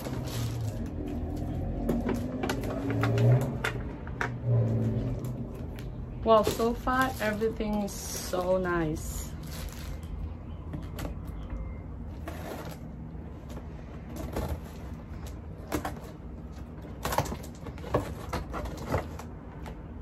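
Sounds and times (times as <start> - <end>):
cardboard box rustling and scraping: 12.1 - 19.4.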